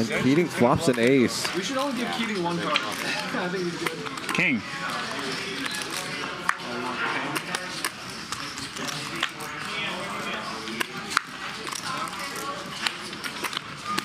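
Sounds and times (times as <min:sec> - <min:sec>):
murmur of voices: 0:00.0 - 0:14.0.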